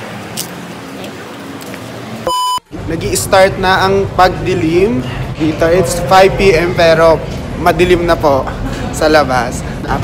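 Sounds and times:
faint street noise: 0.0 - 10.0
high electronic beep: 2.3 - 2.6.

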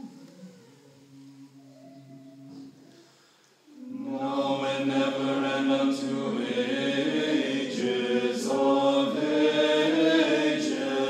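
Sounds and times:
choir singing a cappella chant: 3.7 - 11.0.

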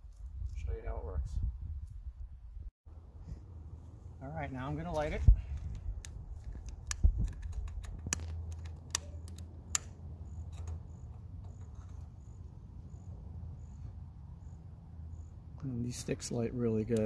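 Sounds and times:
faint insect chirp: 10.2 - 16.6.

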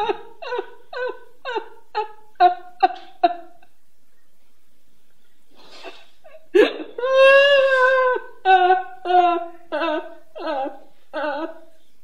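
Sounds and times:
woman sobbing: 0.0 - 3.7, 5.8 - 11.8
woman wailing: 7.0 - 11.6.

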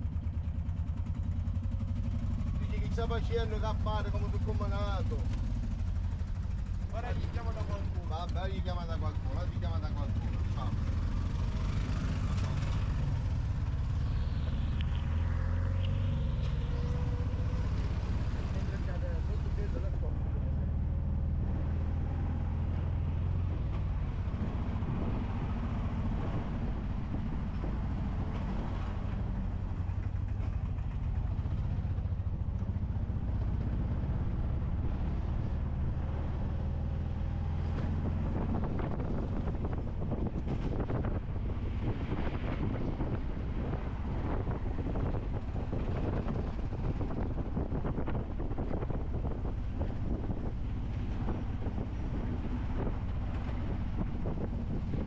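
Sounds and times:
small three-wheeler engine drone: 0.0 - 55.0.

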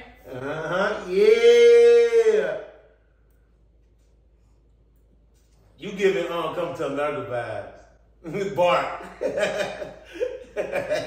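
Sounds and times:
man chuckling: 9.0 - 11.0.

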